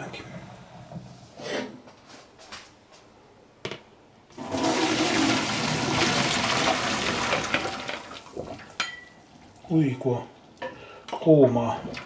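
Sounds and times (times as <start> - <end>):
water splashing into colander: 4.4 - 9.7, 11.8 - 12.0.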